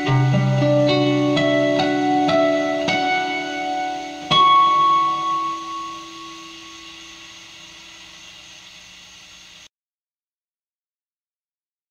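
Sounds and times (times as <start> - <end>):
acoustic guitar chord ringing: 0.0 - 7.5.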